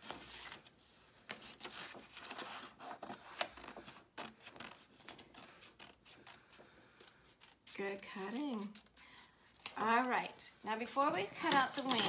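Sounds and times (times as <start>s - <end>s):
scissors snipping paper: 4.2s - 10.2s, 11.4s - 12.0s.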